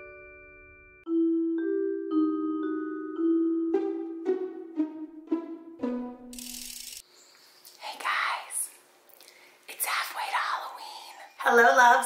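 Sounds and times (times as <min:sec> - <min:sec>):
faint breathy whispering voice: 0:07.8 - 0:08.8, 0:09.7 - 0:11.3.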